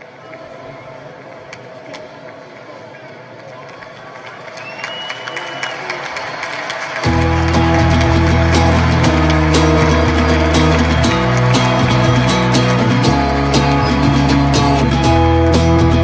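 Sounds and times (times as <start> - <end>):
rock band with bass and guitar: 7.0 - 16.0.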